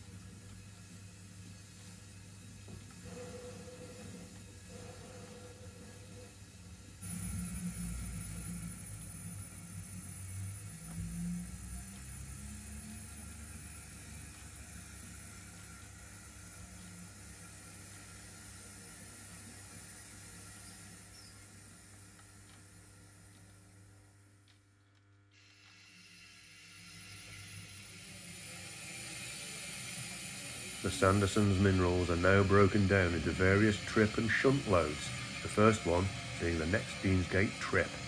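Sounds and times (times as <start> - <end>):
model train rumble and whine: 0.0 - 24.6, 25.3 - 38.0
steady hum: 0.0 - 38.0.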